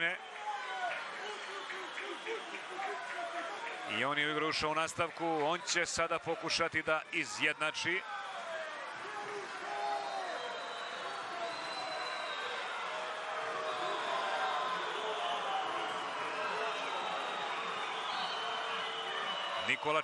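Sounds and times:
crowd shouting: 0:00.2 - 0:04.0, 0:05.4 - 0:20.0.

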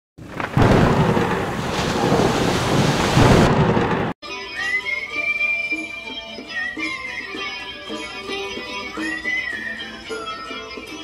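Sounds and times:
heavy rain: 0:00.2 - 0:04.2
thunder rolling: 0:00.2 - 0:04.2.

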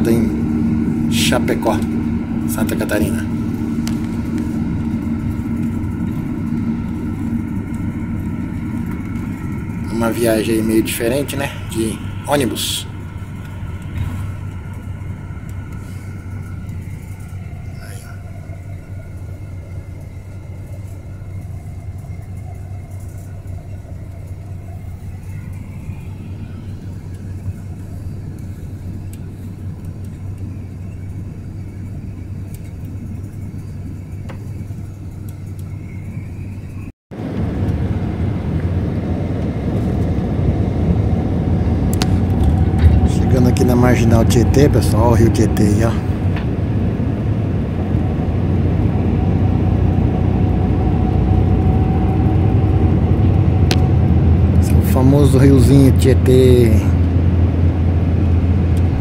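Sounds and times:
bus rumble from inside: 0:00.0 - 0:59.0
faint whine: 0:00.0 - 0:59.0.

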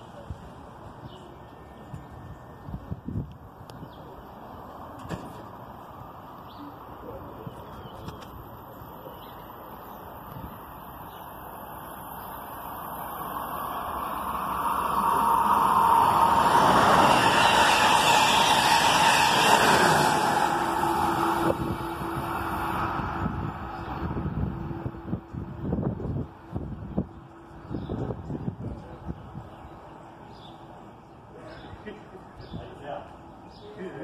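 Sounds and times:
passenger train passing at speed: 0:00.0 - 0:31.4
wheels on rail rushing: 0:07.7 - 0:31.3.

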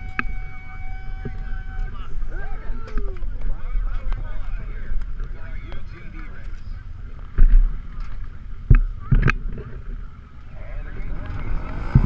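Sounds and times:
faint voices: 0:00.0 - 0:12.0
low steady rumble: 0:00.0 - 0:12.0.

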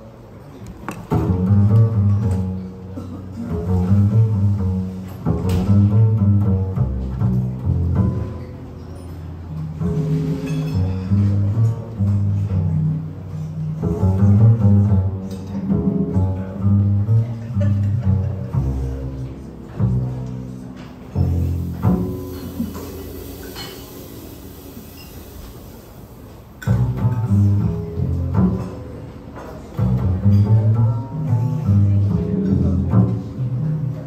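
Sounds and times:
piano: 0:00.0 - 0:34.0
plucked double bass: 0:00.0 - 0:34.0.

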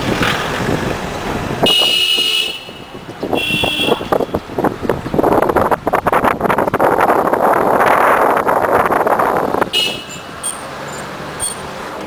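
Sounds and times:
car road noise: 0:00.0 - 0:12.0
street traffic: 0:00.0 - 0:12.0
air rushing past open window: 0:04.0 - 0:12.0.

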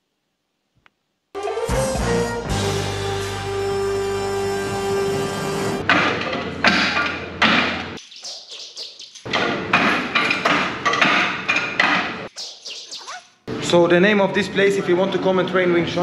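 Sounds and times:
background music: 0:01.4 - 0:06.0.

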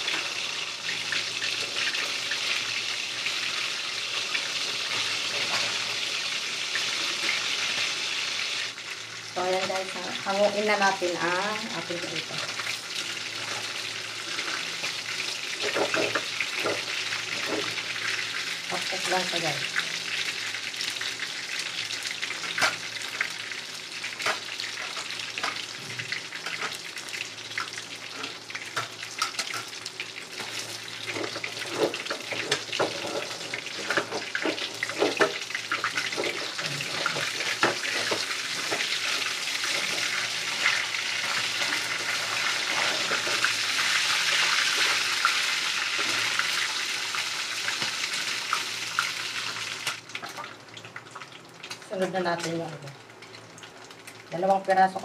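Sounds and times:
fish sizzling in hot oil: 0:00.0 - 0:55.0.

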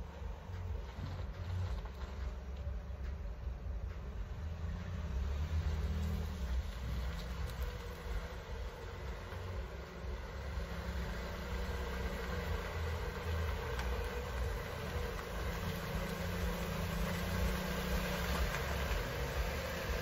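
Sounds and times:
car engine running slowly: 0:00.0 - 0:20.0.

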